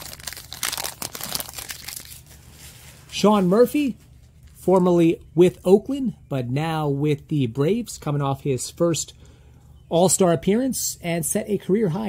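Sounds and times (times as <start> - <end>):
plastic wrapper crinkling: 0.0 - 3.3.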